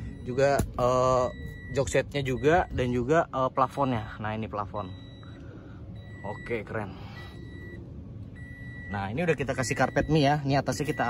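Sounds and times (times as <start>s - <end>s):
electronic beep: 0.0s - 3.1s, 4.6s - 5.4s, 6.0s - 7.8s, 8.4s - 11.0s
low steady hum: 0.0s - 11.0s.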